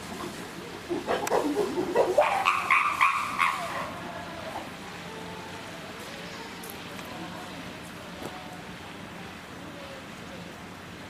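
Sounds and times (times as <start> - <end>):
chimpanzees calling: 0.9 - 4.1.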